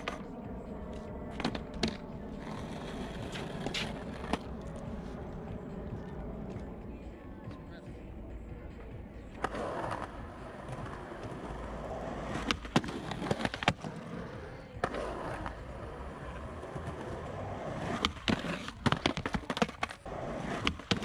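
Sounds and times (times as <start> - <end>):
skateboard clacks: 0.0 - 0.4, 1.0 - 6.9, 8.8 - 21.0
skateboard wheels rolling on concrete: 0.0 - 21.0.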